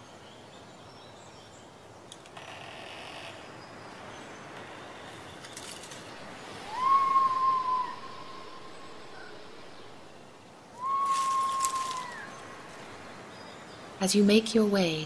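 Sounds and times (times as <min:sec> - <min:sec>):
steady background hiss: 0:00.0 - 0:15.0
whistled bird calls: 0:06.6 - 0:09.4, 0:10.7 - 0:12.6.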